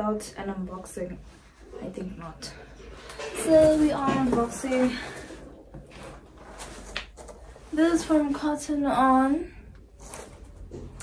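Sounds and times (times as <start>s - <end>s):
cardboard box rustling and scraping: 3.4s - 8.1s.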